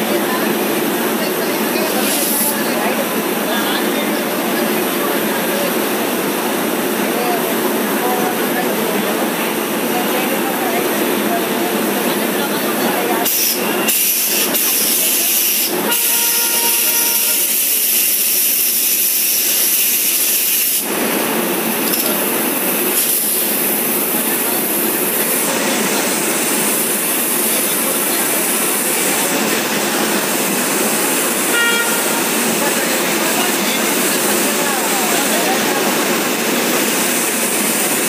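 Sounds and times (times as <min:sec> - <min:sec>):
train wheels rushing on rails: 0:00.0 - 0:38.0.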